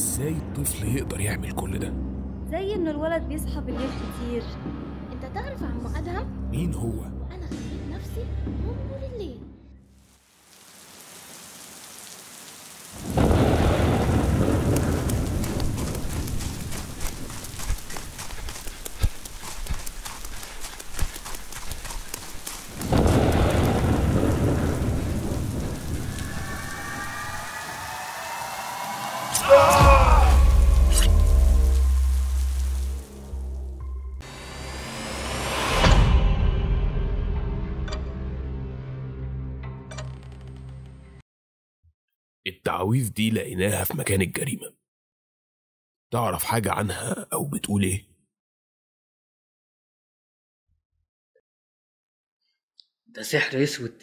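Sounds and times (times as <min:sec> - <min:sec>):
heavy rain: 0:10.0 - 0:33.8
thunder rolling: 0:13.0 - 0:18.2, 0:22.7 - 0:33.6.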